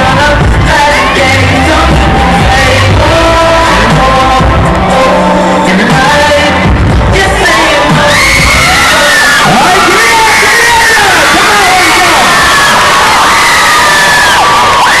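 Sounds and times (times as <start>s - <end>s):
kids shouting and cheering: 0.6s - 2.8s, 7.4s - 15.0s.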